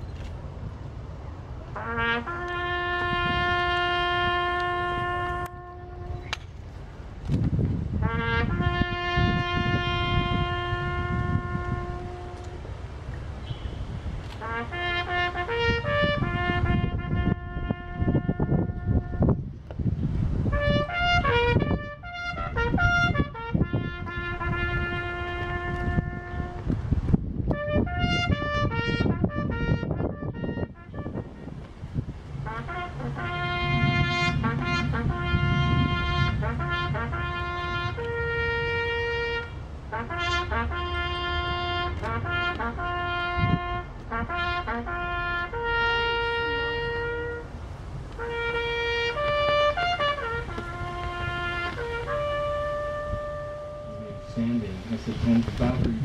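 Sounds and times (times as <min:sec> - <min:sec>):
bugle call: 0:01.7 - 0:06.4, 0:08.0 - 0:12.7, 0:13.4 - 0:19.4, 0:20.5 - 0:26.7, 0:27.5 - 0:31.8, 0:32.4 - 0:56.0.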